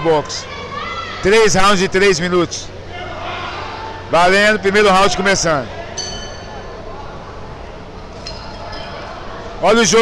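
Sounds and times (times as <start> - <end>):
low hum and murmur of hall: 0.0 - 10.0.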